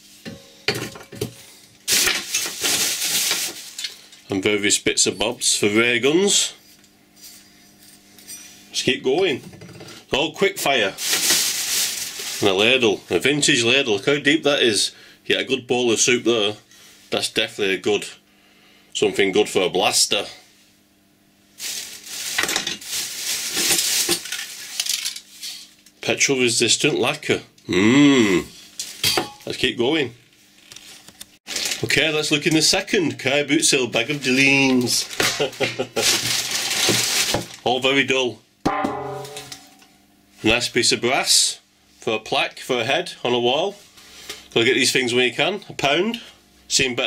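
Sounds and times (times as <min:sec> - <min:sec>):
plastic bag rustling and crinkling: 0:01.8 - 0:04.1, 0:10.6 - 0:13.0, 0:21.6 - 0:25.7, 0:30.5 - 0:32.8, 0:34.0 - 0:37.6.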